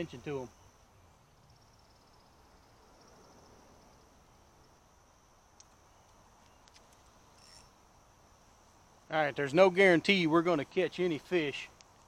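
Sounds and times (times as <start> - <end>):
insect chorus chirring: 0.0 - 12.0
faint clicks: 5.6 - 7.7.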